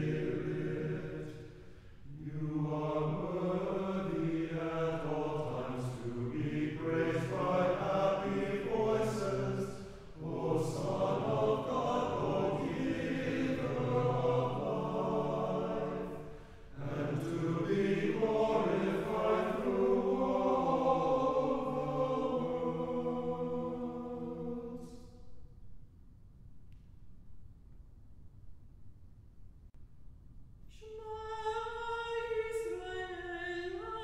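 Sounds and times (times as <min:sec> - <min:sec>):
choir singing a chant: 0:00.0 - 0:25.2.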